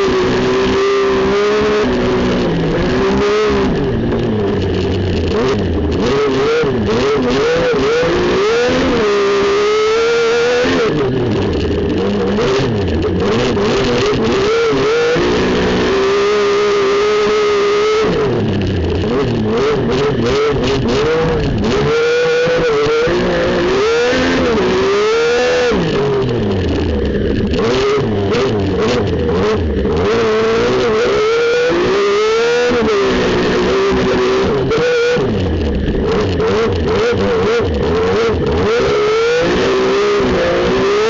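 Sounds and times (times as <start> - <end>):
race car engine revving: 0.0 - 41.0.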